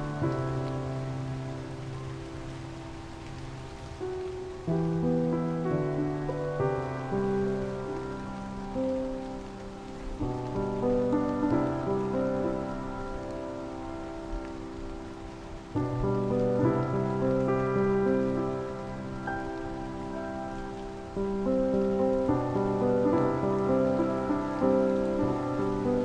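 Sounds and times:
rain hiss: 0.0 - 26.0
soft piano chords: 0.0 - 26.0.

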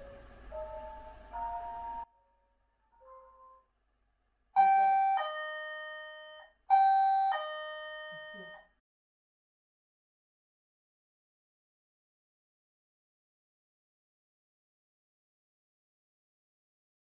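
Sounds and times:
two-note ding-dong chime: 0.0 - 2.1, 4.6 - 8.6
music box melody: 0.5 - 2.1, 4.6 - 8.6.

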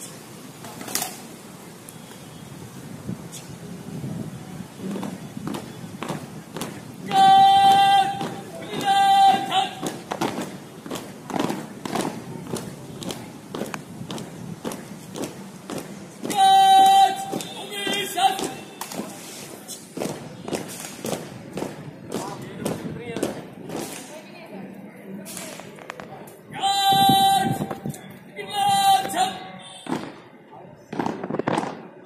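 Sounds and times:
boots on concrete: 4.8 - 24.1
person shouting drill command: 7.0 - 9.8, 16.3 - 18.6, 26.6 - 27.7, 28.4 - 29.5.

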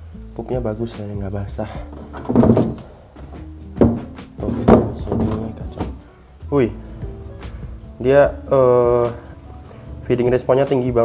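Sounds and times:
background music: 0.0 - 11.0
knocks on enclosure: 3.8 - 6.0.

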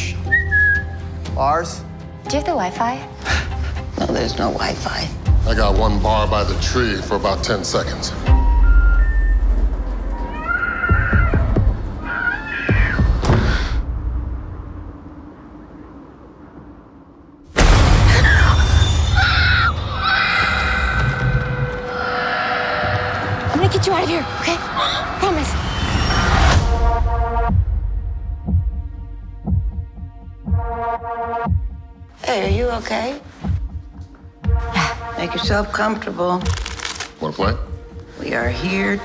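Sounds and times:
high wavering whining cries: 18.4 - 26.6
low heartbeat-like thuds: 27.0 - 34.7.

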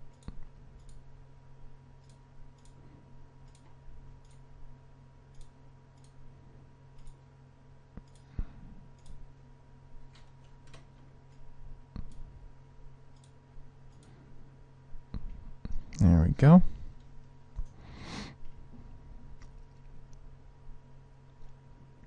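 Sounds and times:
computer mouse clicking: 0.0 - 1.1, 2.0 - 2.8, 3.4 - 4.5, 5.3 - 6.2, 7.0 - 7.3, 8.0 - 8.3, 8.9 - 9.2, 13.1 - 14.2
faint electrical hum: 0.0 - 22.0.

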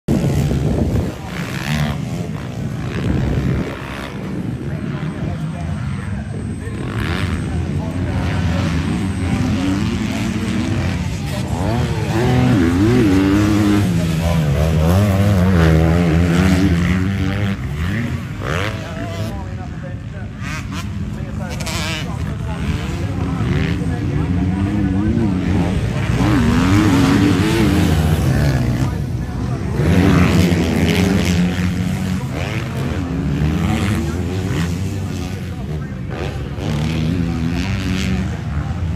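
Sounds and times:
motocross bike engines revving: 0.0 - 38.9.

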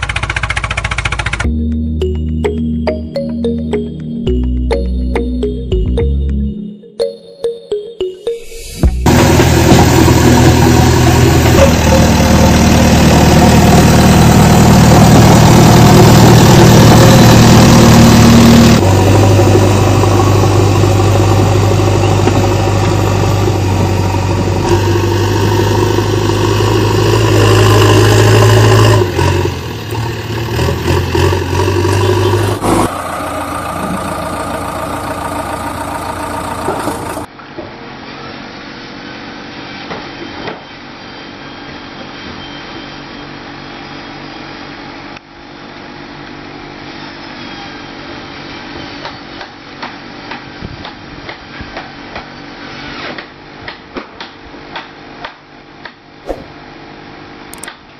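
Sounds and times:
vehicle engine running: 0.0 - 6.5, 8.8 - 37.4.

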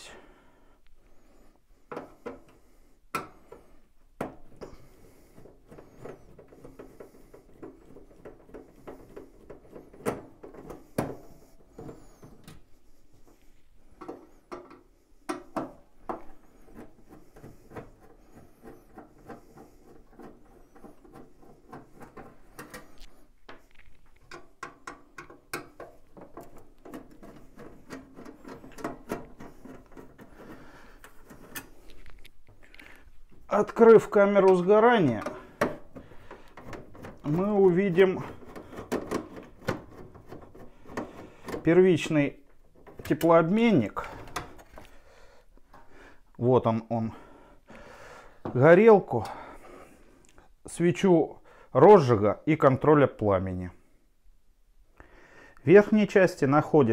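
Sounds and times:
metal cover being handled: 4.2 - 44.9.

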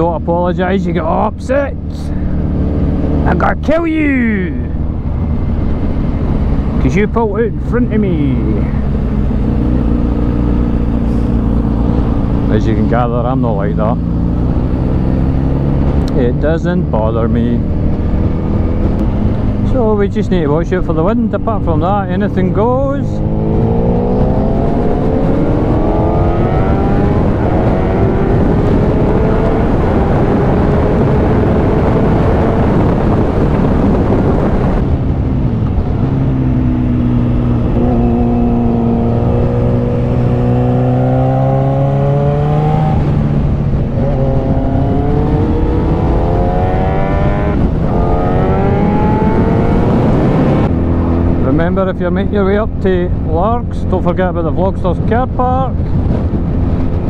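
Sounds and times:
motorcycle engine revving: 0.0 - 20.1, 21.0 - 57.0
wind rush on microphone: 0.0 - 57.0.

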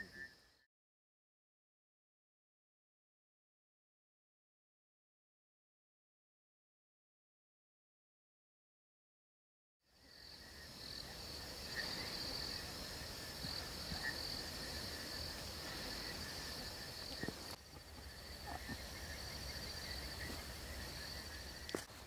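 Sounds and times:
crickets chirping: 0.0 - 0.6, 9.9 - 22.0.

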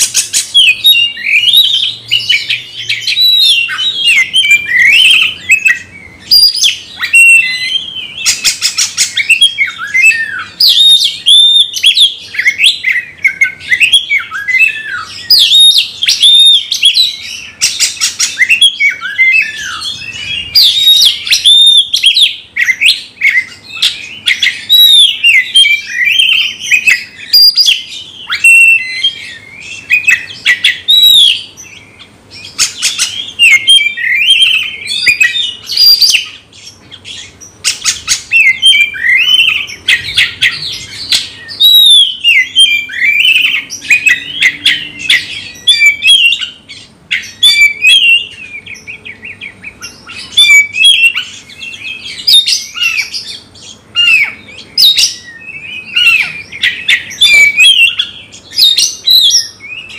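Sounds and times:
bird singing whistled song: 0.0 - 59.9
harsh rasping bird calls: 0.0 - 59.9.

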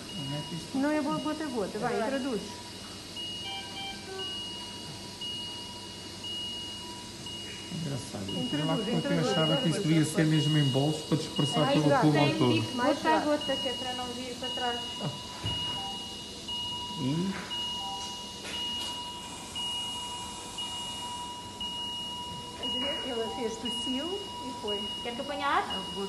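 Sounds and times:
high electronic alarm tone: 0.0 - 26.0
lower steady alarm tone: 0.0 - 26.0
voices: 7.7 - 15.2, 22.6 - 26.0.

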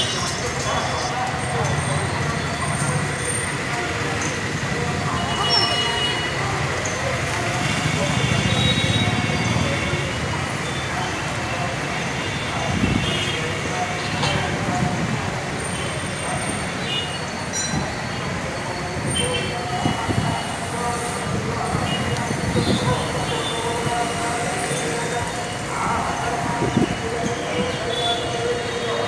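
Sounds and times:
outdoor background noise: 0.0 - 29.0
people's voices: 0.0 - 29.0.

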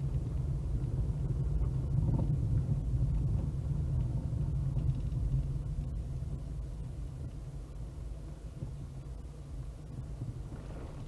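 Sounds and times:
car engine rumbling: 0.0 - 11.0
road noise inside car: 0.0 - 11.0.

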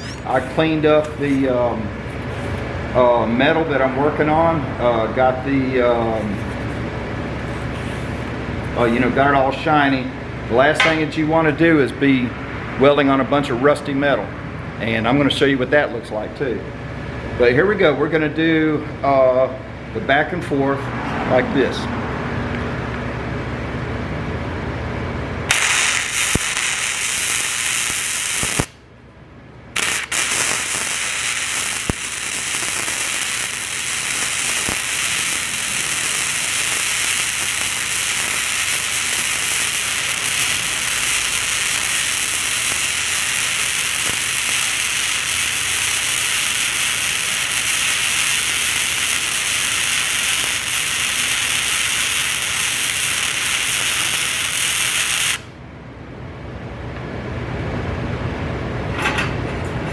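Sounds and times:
welding arc: 0.0 - 1.5, 25.5 - 28.9, 29.8 - 55.5.

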